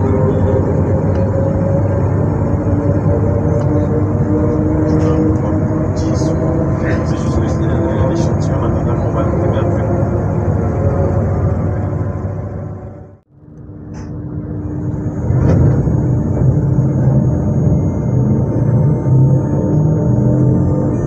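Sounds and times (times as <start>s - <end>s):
electric train mechanical hum: 0.0s - 21.0s.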